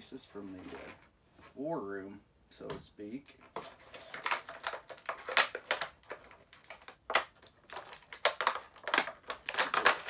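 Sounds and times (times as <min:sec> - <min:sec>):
plastic packaging crinkling: 0:03.6 - 0:10.0.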